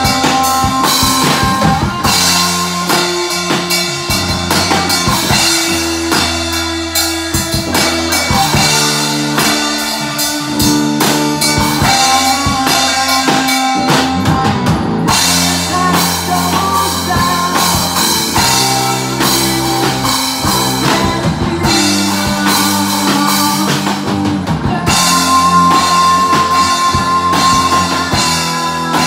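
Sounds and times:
drum kit beat: 0.0 - 29.0
rock band playing live: 0.0 - 29.0.

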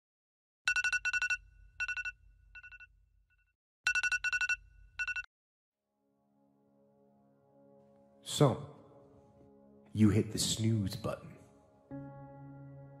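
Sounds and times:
phone alarm beeps: 0.7 - 2.9, 3.9 - 5.3.

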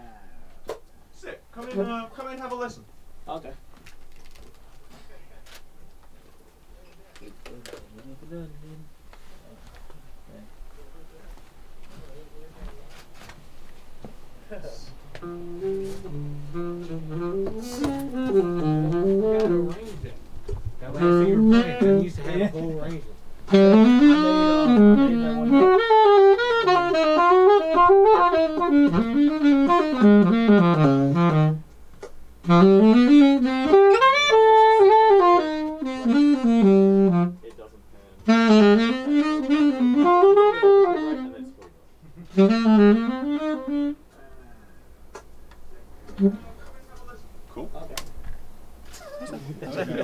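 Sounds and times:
room hum: 0.0 - 50.0
alto saxophone playing: 15.0 - 20.2, 20.8 - 31.7, 32.4 - 37.5, 38.2 - 41.6, 42.2 - 44.2, 46.1 - 46.6
people laughing: 49.3 - 50.0.

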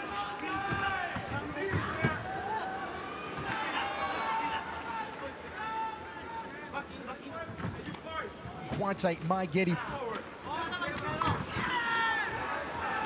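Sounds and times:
crowd shouting: 10.5 - 13.0.

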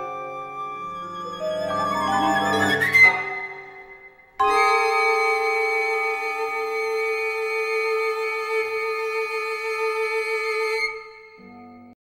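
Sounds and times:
long-held violin note: 0.0 - 12.0.

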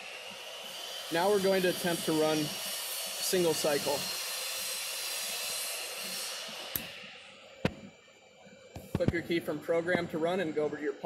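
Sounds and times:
steady hiss: 0.8 - 11.0.

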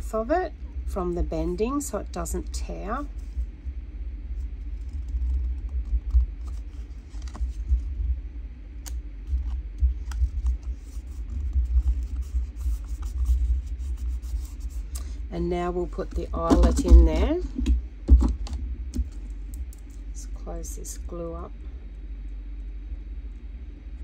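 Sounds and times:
low uneven rumble: 0.0 - 24.0
paper rustling: 4.4 - 7.8.

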